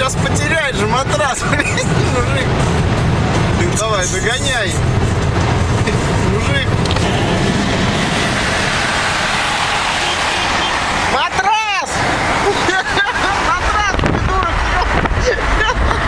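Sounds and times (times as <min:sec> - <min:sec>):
road and wind rush in car: 0:00.0 - 0:16.0.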